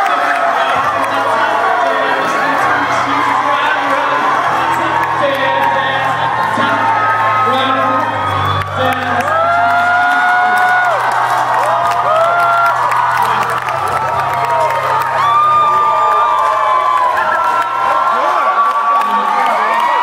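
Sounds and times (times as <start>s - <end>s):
crowd cheering and whooping: 0.0s - 20.0s.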